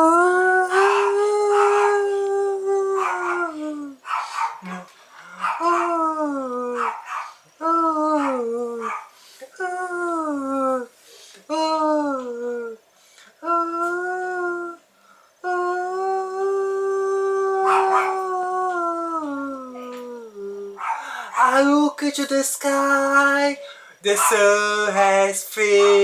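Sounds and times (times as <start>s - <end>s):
man singing wordless vowels: 0.0s - 4.0s, 5.6s - 6.8s, 7.6s - 26.0s
man breathing: 9.1s - 9.6s, 11.0s - 11.5s, 20.8s - 21.4s, 23.6s - 24.0s.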